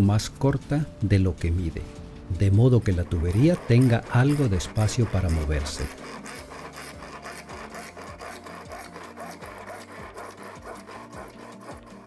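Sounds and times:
handsaw cutting plastic pipe: 2.8 - 12.0.

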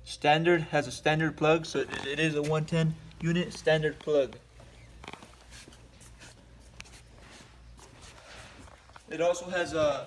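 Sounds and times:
refrigerated display case hum: 0.0 - 10.0
light scuffs and clicks: 1.7 - 10.0.

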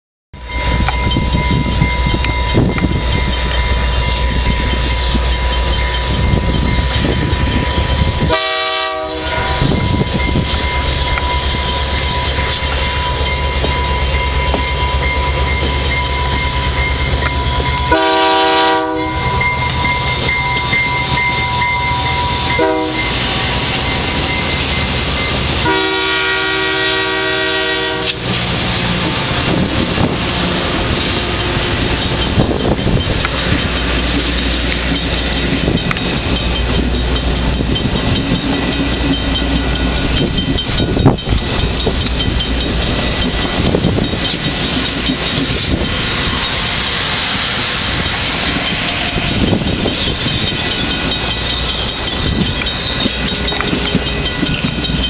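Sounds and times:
diesel train rumbling past: 0.4 - 55.0
train wheels on rails: 0.4 - 55.0
locomotive air horn blasts: 8.3 - 9.7, 17.9 - 19.3, 22.5 - 23.2, 25.6 - 28.2.

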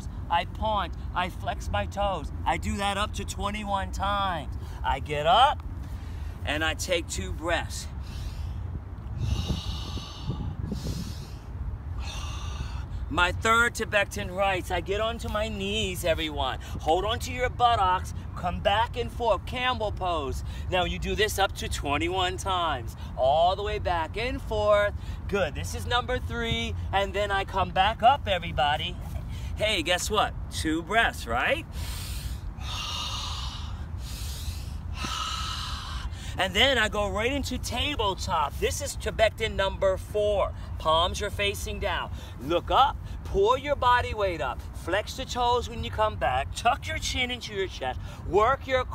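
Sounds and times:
low steady rumble: 0.0 - 48.9
man breathing deeply: 7.9 - 13.1, 31.7 - 36.4.

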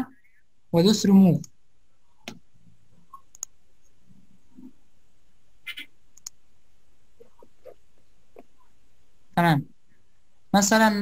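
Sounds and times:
computer mouse clicks: 3.1 - 4.0, 5.6 - 6.4.

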